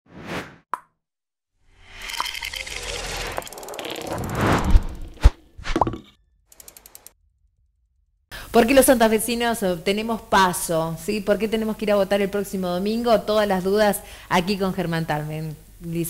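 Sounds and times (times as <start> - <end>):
faint fluttering: 1.8 - 5.4
short whoosh: 4.1 - 5.8.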